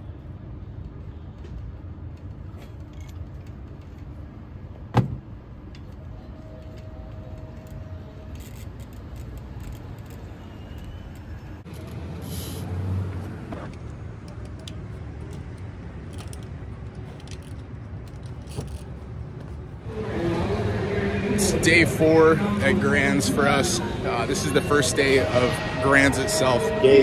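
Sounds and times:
distant traffic: 0.0 - 27.0
parking lot ambience rumble: 0.0 - 27.0
bike parts clicking and knocking: 0.8 - 4.2, 13.7 - 19.0.

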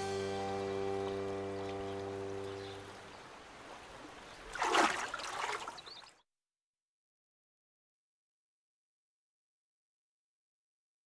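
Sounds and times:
held music chord: 0.0 - 3.0
otter diving splash: 3.6 - 6.1.

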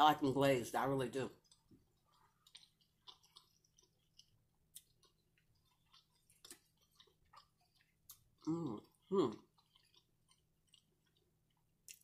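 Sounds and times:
faint wet chewing: 1.3 - 12.0.

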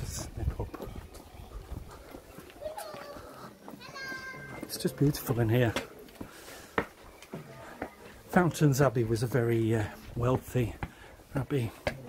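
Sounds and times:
child calling: 2.6 - 4.7.

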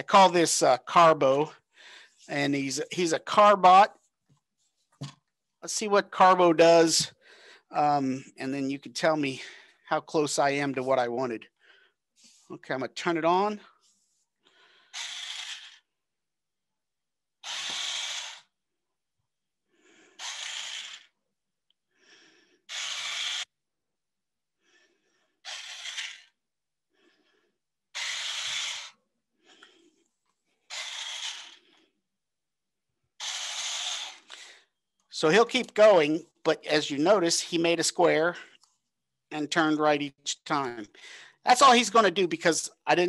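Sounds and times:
toy motors and gears whirring: 14.8 - 16.0, 17.4 - 18.6, 19.9 - 21.2, 22.6 - 23.6, 25.4 - 26.4, 27.9 - 29.0, 30.6 - 31.9, 33.2 - 34.4.

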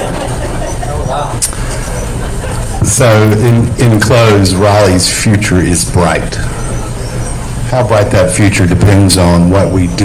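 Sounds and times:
faint murmured voices: 0.0 - 10.0
room noise: 0.0 - 10.0.

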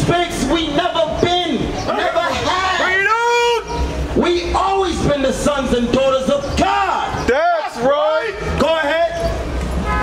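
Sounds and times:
man speaking through microphone: 0.0 - 9.4.

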